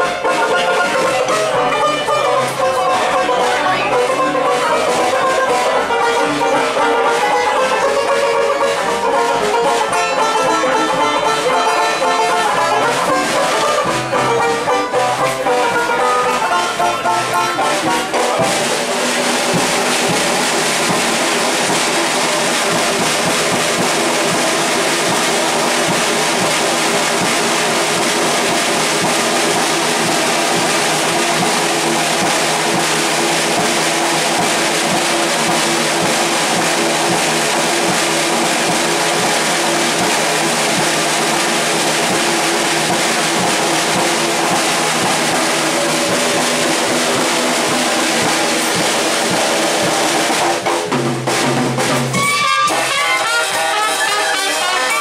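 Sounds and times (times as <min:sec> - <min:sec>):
pocket trumpet: 0:00.0 - 0:18.8, 0:52.1 - 0:55.0
drum kit: 0:00.0 - 0:55.0
small jazz band playing: 0:00.0 - 0:55.0.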